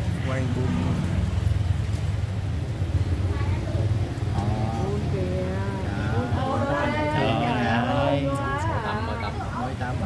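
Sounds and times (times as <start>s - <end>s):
vehicle engine rumbling: 0.0s - 7.2s.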